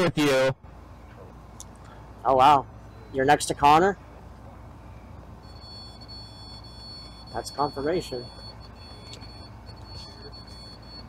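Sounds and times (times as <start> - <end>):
high-pitched electronic tone: 5.4 - 11.0.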